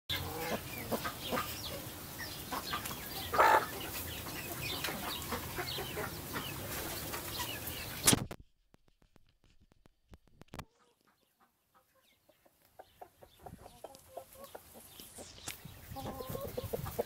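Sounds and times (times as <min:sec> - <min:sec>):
chickens clucking: 0:00.1 - 0:08.2, 0:10.6 - 0:17.0.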